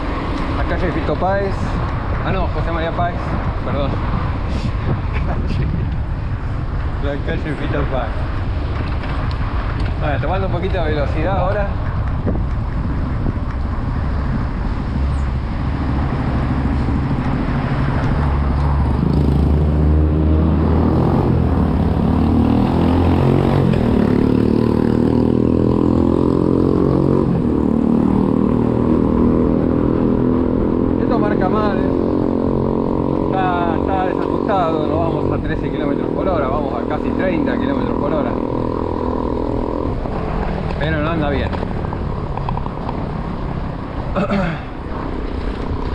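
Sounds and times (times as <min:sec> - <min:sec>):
wind buffeting microphone: 0:00.0 - 0:19.6
traffic engine drone: 0:00.0 - 0:45.9.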